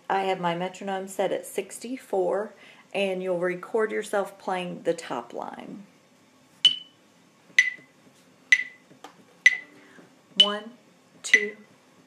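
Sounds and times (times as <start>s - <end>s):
metronome clicking: 6.7s - 6.9s, 7.6s - 7.8s, 8.5s - 8.8s, 9.4s - 9.7s, 11.3s - 11.6s.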